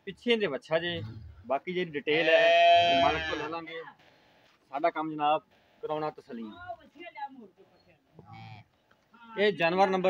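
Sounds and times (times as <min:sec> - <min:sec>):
calf bawling: 0:02.2 - 0:03.5.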